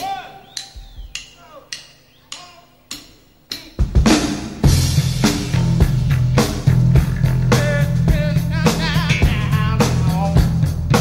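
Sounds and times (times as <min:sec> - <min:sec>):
drums: 0:00.0 - 0:11.0.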